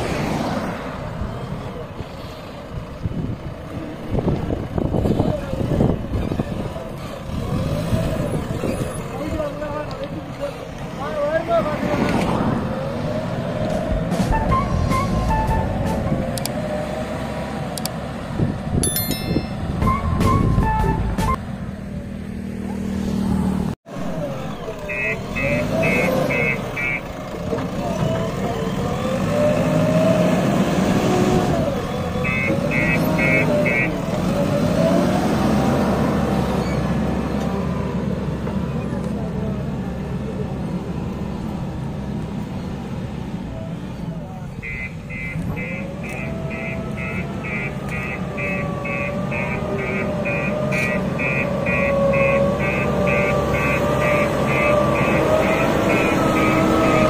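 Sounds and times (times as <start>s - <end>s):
diesel engine under load: 0.0s - 57.0s
people talking: 8.9s - 12.3s, 38.7s - 40.9s, 43.5s - 44.7s.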